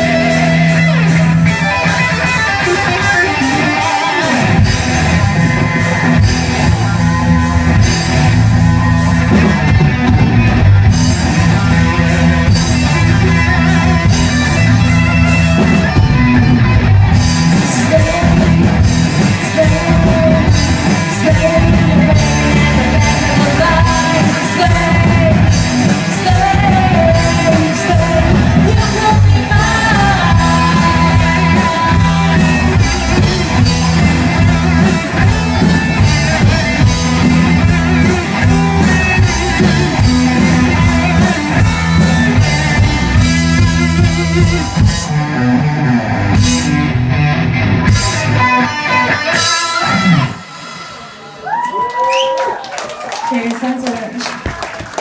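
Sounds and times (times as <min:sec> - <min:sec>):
rock band playing: 0:00.0 - 0:55.0
woman singing: 0:17.6 - 0:33.3
audience whooping: 0:49.8 - 0:55.0
audience clapping: 0:51.4 - 0:55.0.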